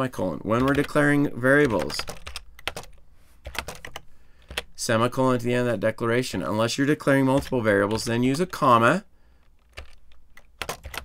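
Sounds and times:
typing on computer keyboard: 0.5 - 4.7, 7.3 - 8.5, 9.4 - 11.0.

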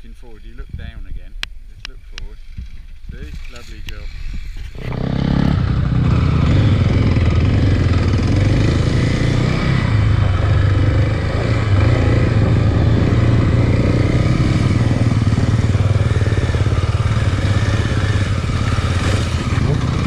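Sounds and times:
dirt bike engine running: 0.1 - 20.0.

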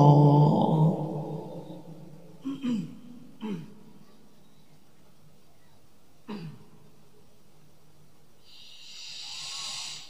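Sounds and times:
person reciting: 0.0 - 3.8
deep in-breath near microphone: 8.4 - 10.0.

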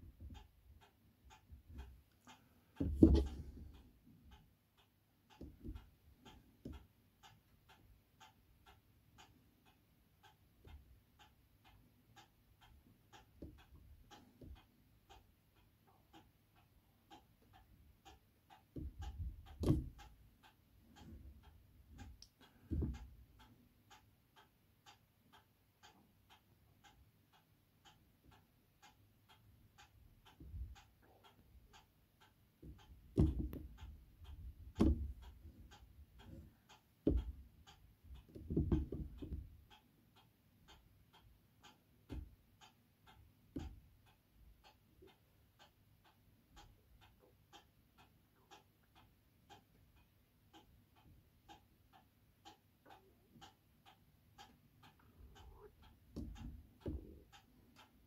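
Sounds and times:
clock ticking: 0.0 - 58.0
paintbrush tapping on canvas: 2.8 - 3.5
soft low thumps: 2.8 - 3.7, 18.8 - 20.0, 32.6 - 36.4.

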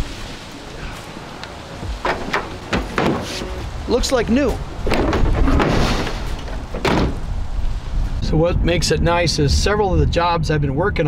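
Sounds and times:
truck tailgate slamming shut: 2.0 - 3.6, 4.9 - 7.3.

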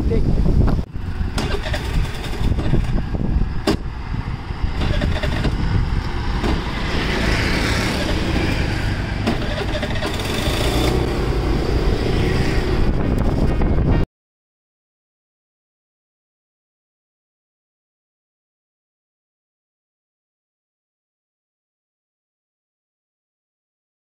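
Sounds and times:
vehicle engine and road rumble: 0.0 - 14.1
wind noise on microphone: 0.0 - 14.1.

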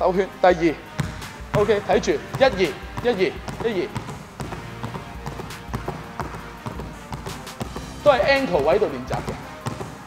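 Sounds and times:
basketball bouncing on hardwood: 1.0 - 10.0.

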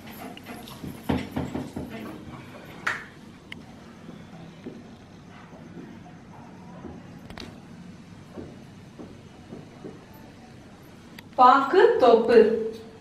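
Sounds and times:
sharp knocks: 8.3 - 10.1.

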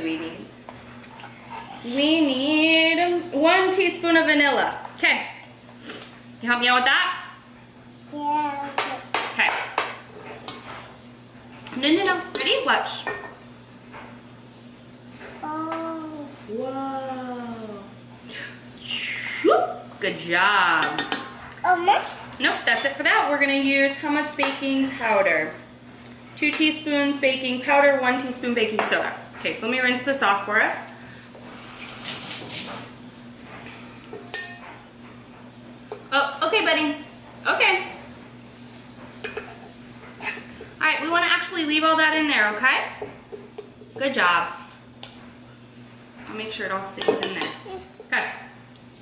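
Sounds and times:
tap water running: 31.4 - 33.0
metal spoons clinking: 34.3 - 34.6.

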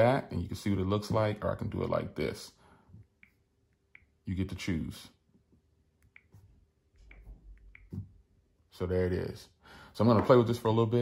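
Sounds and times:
fingers tapping phone screen: 6.0 - 8.3.

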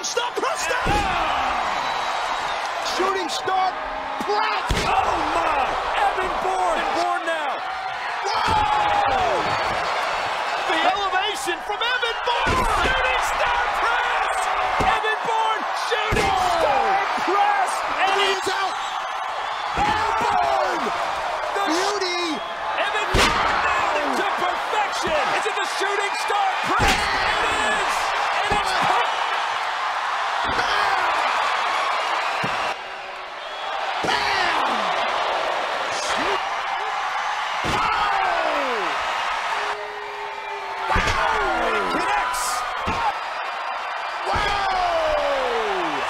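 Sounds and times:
arena crowd cheering: 0.0 - 46.0.

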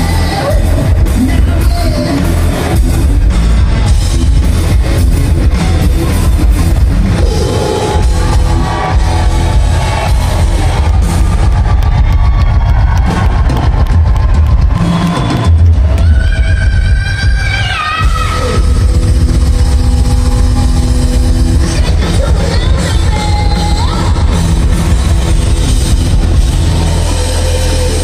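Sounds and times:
hard rock band playing: 0.0 - 28.0.

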